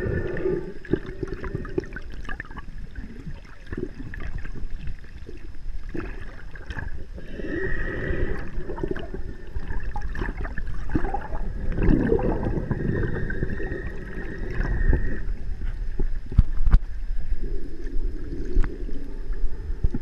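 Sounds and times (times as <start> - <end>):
underwater sloshing and gurgling: 0.0 - 20.0.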